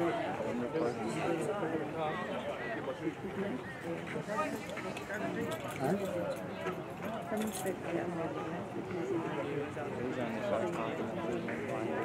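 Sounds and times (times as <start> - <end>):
indistinct chatter of spectators: 0.0 - 12.0.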